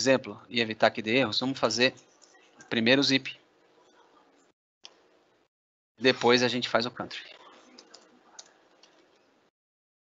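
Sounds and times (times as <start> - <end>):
computer keys typing: 1.8 - 2.9, 7.1 - 9.5.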